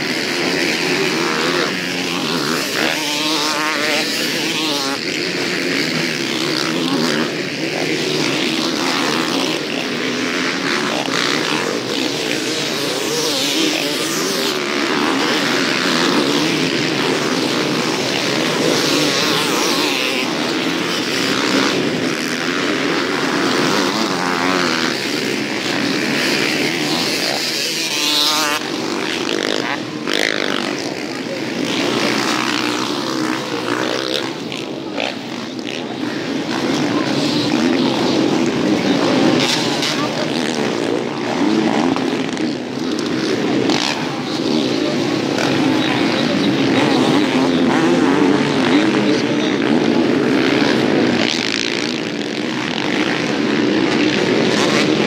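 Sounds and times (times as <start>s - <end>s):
motocross bikes revving: 0.0s - 55.0s.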